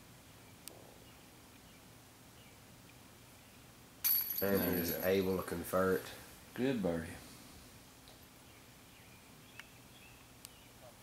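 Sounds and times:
disc striking basket chains: 4.0s - 5.4s.

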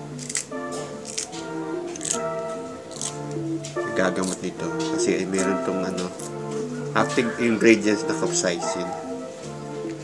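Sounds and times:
scissors snipping chili peppers: 0.0s - 7.3s
background music: 0.0s - 10.0s.

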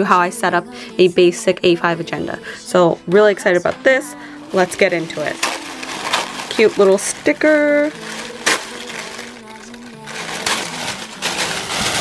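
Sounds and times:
soft background music: 0.0s - 12.0s
tissue paper crinkling: 4.5s - 12.0s.

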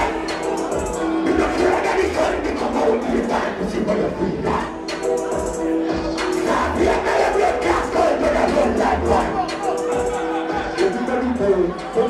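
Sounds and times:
crowd shouting and cheering: 0.0s - 12.0s
dancehall music with low beat: 0.0s - 12.0s.

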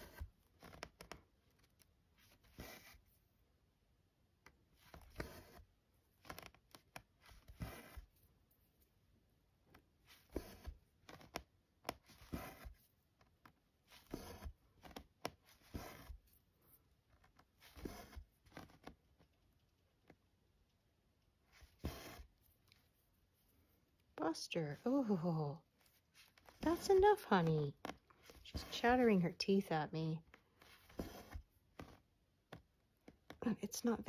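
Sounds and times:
thread pulled through cloth: 0.0s - 3.2s, 4.8s - 8.2s, 9.7s - 19.4s, 21.4s - 29.5s, 30.2s - 33.5s.

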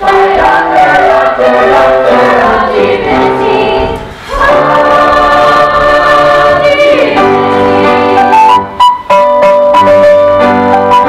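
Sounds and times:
chorus singing operetta: 0.0s - 8.8s.

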